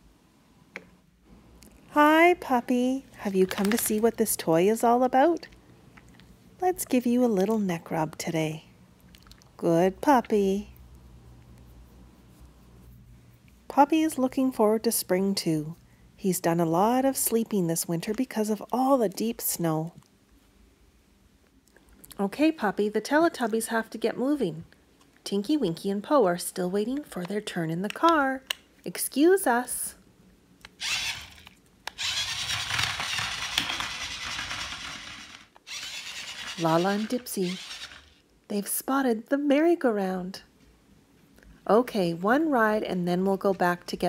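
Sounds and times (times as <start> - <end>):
low steady hum: 0.0 - 44.0
hand rubbing dog fur: 11.6 - 13.4
toy car motor whirring: 30.8 - 38.2.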